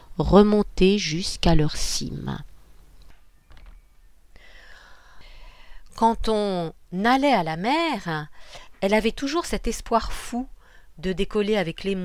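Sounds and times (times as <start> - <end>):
low steady hum: 0.0 - 12.0
woman breathing in through mouth: 4.4 - 5.8.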